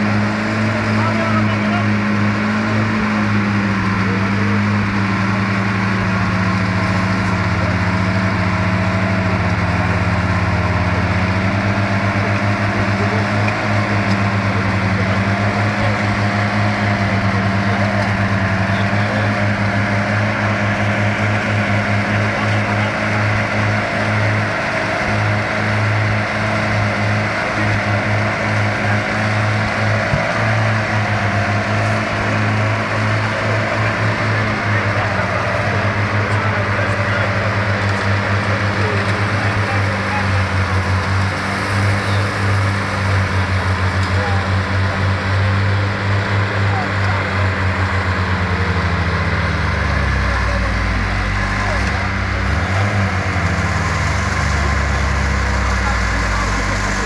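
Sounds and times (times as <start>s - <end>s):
tracked vehicle engine running: 0.0s - 57.0s
vehicle wading through mud and water: 0.0s - 57.0s.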